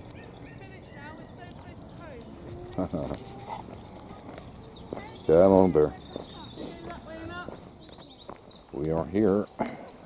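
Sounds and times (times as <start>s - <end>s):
faint birdsong: 0.0s - 10.0s
low outdoor background: 0.0s - 10.0s.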